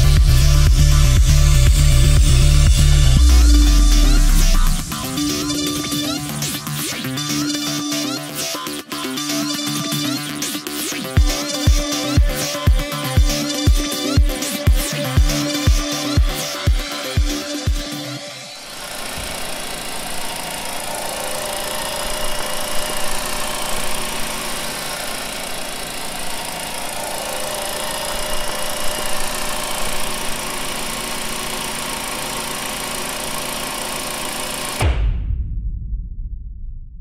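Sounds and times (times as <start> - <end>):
loud low rumble: 0.0 - 7.0, 34.8 - 37.0
car engine idling: 0.0 - 7.6, 18.6 - 34.8.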